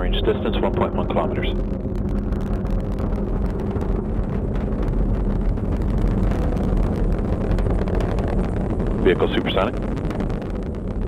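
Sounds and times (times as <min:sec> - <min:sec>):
distant rocket roar: 0:00.0 - 0:11.0.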